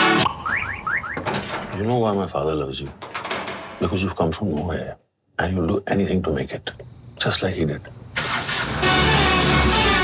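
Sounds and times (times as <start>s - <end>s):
car engine cranking and starting: 8.2s - 10.0s
loud music: 8.8s - 10.0s.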